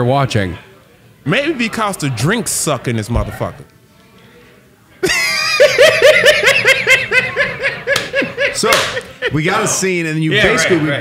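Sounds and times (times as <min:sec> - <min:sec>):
men laughing: 0:05.0 - 0:09.8.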